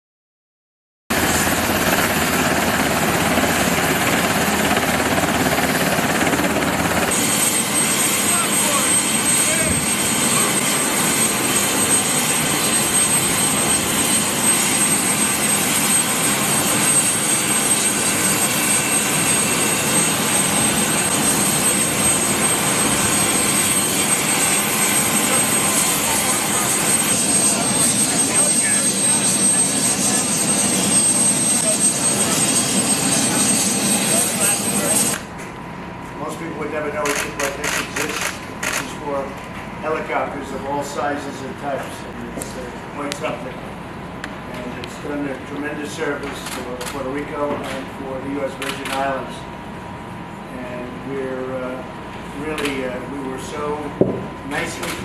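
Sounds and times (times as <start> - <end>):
helicopter turbine engines running: 1.1 - 55.0
steady high whine: 1.2 - 55.0.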